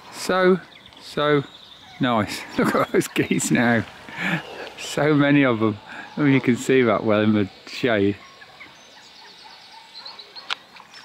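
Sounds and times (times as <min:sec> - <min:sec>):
songbirds singing: 0:00.0 - 0:11.0.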